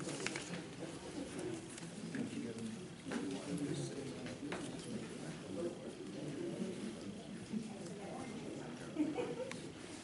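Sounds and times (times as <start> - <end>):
muffled murmur of voices: 0.0 - 10.0.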